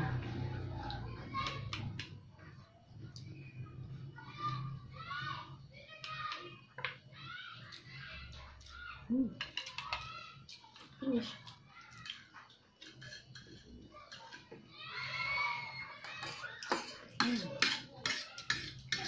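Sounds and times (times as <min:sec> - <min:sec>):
utensils clicking against plates: 0:09.4 - 0:10.9, 0:12.8 - 0:14.6, 0:16.0 - 0:19.0.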